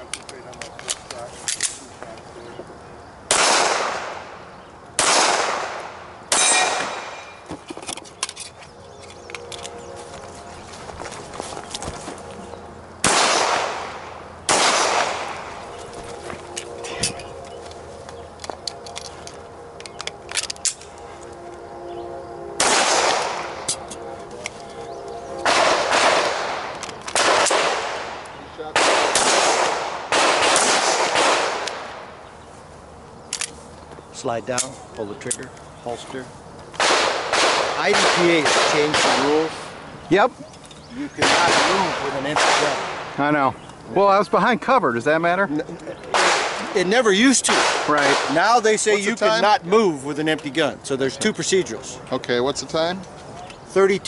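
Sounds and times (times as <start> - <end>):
pistol shots echoing: 3.3 - 4.4, 5.0 - 7.4, 13.0 - 15.6, 22.6 - 23.8, 25.4 - 32.1, 36.8 - 39.5, 41.2 - 43.2, 46.1 - 48.5.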